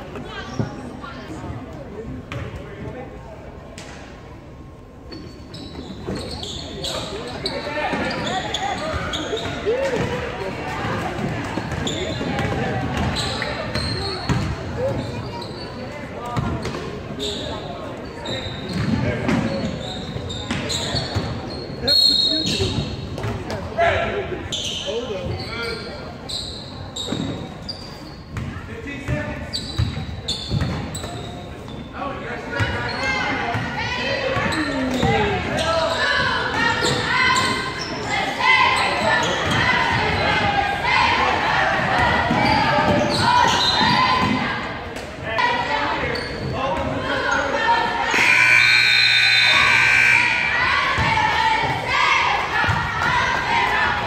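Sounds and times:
sneaker squeaks: 0:05.0 - 0:23.6, 0:24.4 - 0:40.4, 0:41.9 - 0:44.4, 0:45.9 - 0:51.1
voices calling out: 0:45.3 - 0:54.0
scoreboard buzzer: 0:48.1 - 0:50.5.

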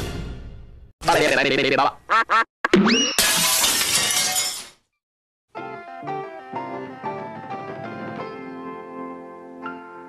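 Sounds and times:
glass breaking crash: 0:03.2 - 0:04.9.

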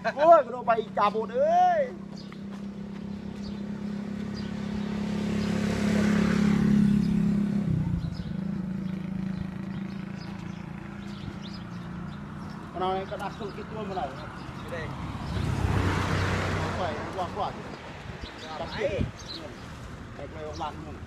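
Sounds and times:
vehicle driving past: 0:02.1 - 0:12.8, 0:13.6 - 0:18.0.

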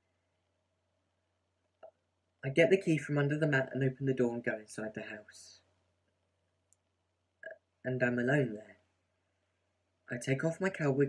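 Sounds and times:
person speaking: 0:02.4 - 0:05.8, 0:07.4 - 0:08.9, 0:10.0 - 0:11.0.

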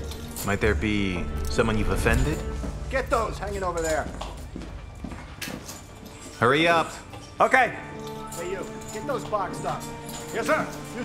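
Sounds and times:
footsteps: 0:00.0 - 0:11.0.

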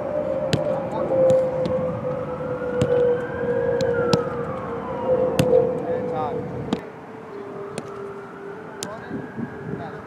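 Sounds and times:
siren wailing: 0:00.0 - 0:10.0
soccer ball being kicked: 0:00.5 - 0:03.1, 0:03.8 - 0:04.6, 0:05.4 - 0:05.6, 0:07.7 - 0:08.0.

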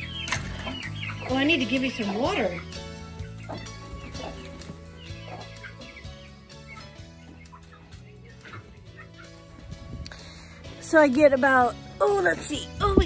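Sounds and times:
chickens clucking: 0:00.0 - 0:12.6
quiet background music: 0:00.0 - 0:13.0.

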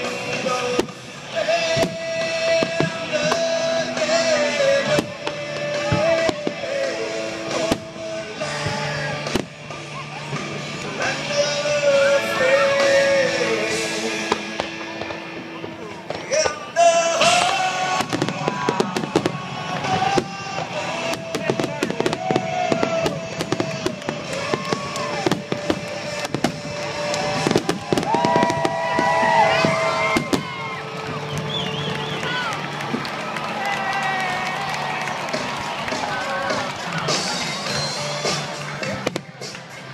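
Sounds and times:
fireworks bursting and crackling: 0:00.0 - 0:39.9
loud music: 0:00.0 - 0:39.9.

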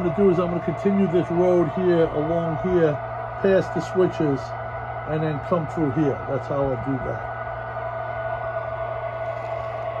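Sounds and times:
mid-pitched whine: 0:00.0 - 0:10.0
model train electrical hum: 0:00.0 - 0:10.0.

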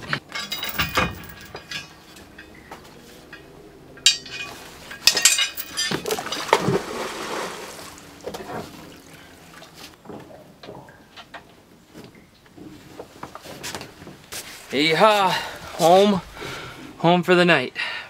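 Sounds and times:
metal gear clinking on wooden deck: 0:00.0 - 0:06.8
water splashing and pouring: 0:05.7 - 0:10.0.

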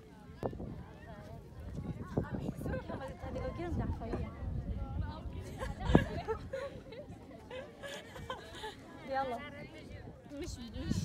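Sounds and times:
wind rumble on microphone: 0:00.2 - 0:07.3, 0:09.5 - 0:11.0
young women talking and calling: 0:00.9 - 0:11.0.

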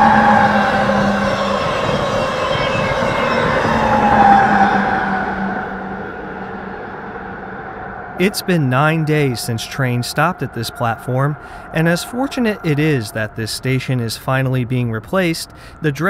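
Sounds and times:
locomotive whine falling in pitch: 0:00.0 - 0:14.1
train wheel and rail noise: 0:00.0 - 0:14.6.

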